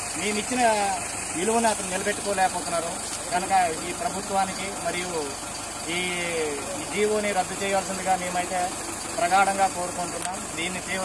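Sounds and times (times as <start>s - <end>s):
engine idling: 0.0s - 11.0s
man speaking: 0.2s - 11.0s.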